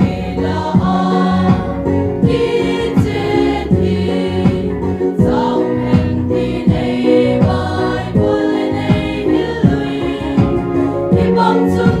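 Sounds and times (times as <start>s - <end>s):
instrumental accompaniment: 0.0s - 12.0s
steady drum beat: 0.0s - 12.0s
women's choir singing gospel: 0.0s - 12.0s.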